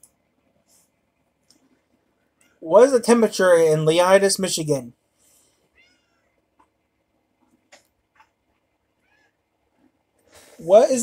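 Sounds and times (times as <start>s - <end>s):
faint meow-like animal call: 5.8s - 6.4s, 9.0s - 9.4s.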